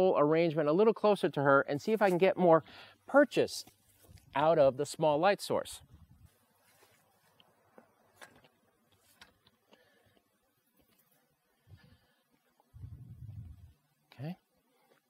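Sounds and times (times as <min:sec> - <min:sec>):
brief low rumble: 0:12.8 - 0:13.7.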